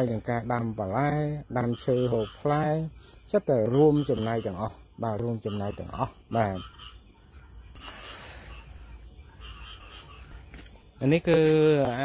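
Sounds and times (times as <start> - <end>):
frogs and insects calling: 0.0 - 12.0.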